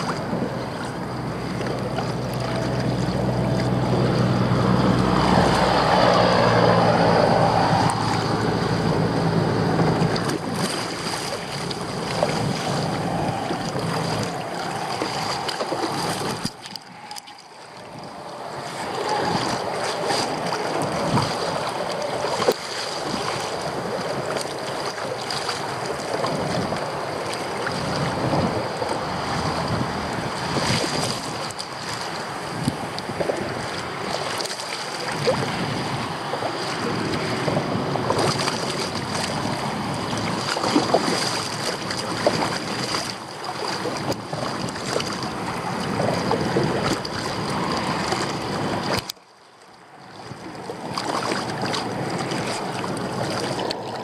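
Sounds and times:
wind buffeting microphone: 0.0 - 49.1, 50.0 - 54.0
water slapping kayak hull: 0.0 - 54.0.

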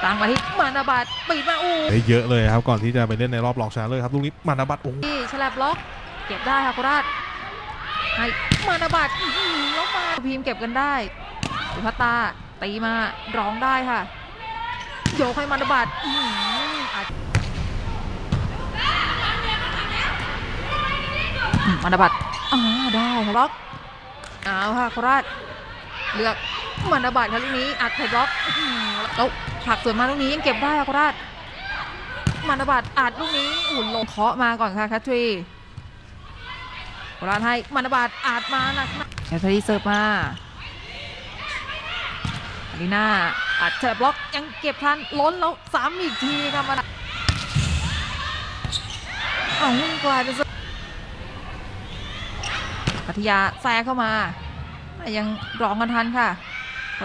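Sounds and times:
arena crowd noise: 0.0 - 57.0
sports hall background noise: 0.0 - 57.0
faint shouting: 6.1 - 10.2, 13.2 - 17.1, 25.0 - 34.1.

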